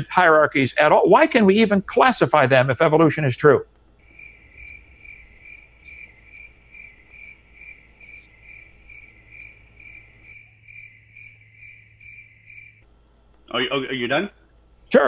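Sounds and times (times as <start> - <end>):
faint low hum: 0.0 - 15.0
cricket chirping: 4.0 - 12.9.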